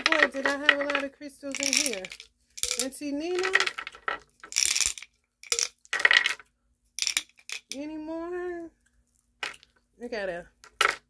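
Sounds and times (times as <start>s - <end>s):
stones rattling in a glass jar: 0.0s - 6.4s, 7.0s - 7.8s.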